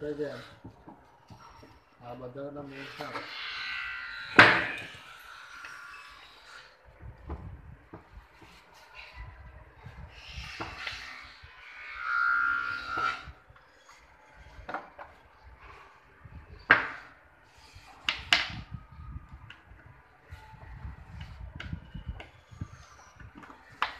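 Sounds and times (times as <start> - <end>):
wood scraping: 0.0 - 9.2, 9.9 - 18.7.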